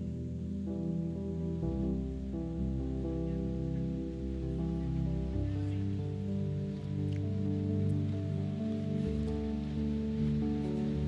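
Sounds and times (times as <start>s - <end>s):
electronic keyboard chords: 0.0s - 11.0s.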